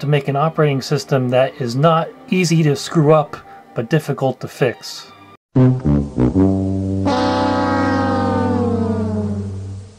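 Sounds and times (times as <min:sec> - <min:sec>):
sad trombone sound effect: 0:05.6 - 0:09.9.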